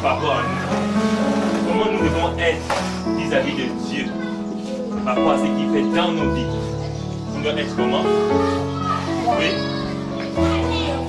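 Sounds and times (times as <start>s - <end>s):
background music sustained chords: 0.0s - 11.0s
children's voices: 3.4s - 11.0s.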